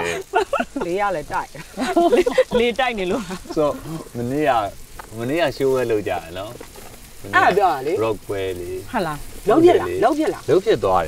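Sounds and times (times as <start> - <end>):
food sizzling on a grill pan: 0.0 - 11.0
people conversing: 0.0 - 11.0.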